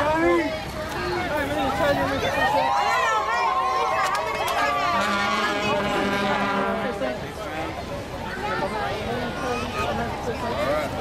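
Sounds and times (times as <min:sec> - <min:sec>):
crowd voices: 0:00.0 - 0:11.0
horn sounding steady note: 0:04.8 - 0:07.2.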